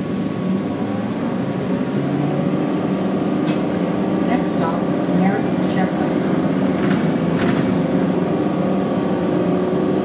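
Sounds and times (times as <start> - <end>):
bus drivetrain drone: 0.0 - 10.0
road noise: 0.0 - 10.0.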